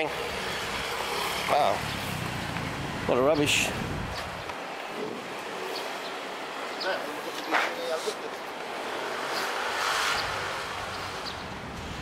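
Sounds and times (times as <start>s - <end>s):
vehicle passing close by: 0.2s - 4.5s, 8.8s - 12.0s.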